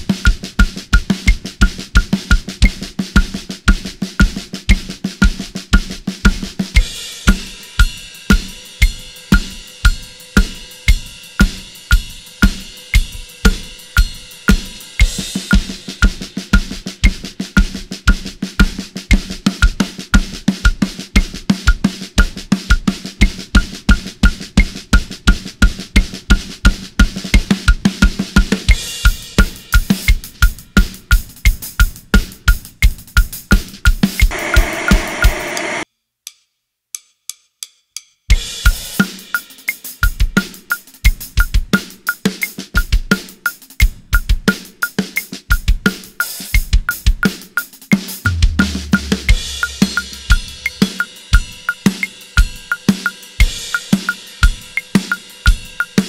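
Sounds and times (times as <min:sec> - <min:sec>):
drum kit playing a groove: 0:00.0 - 0:35.8, 0:38.3 - 0:56.0.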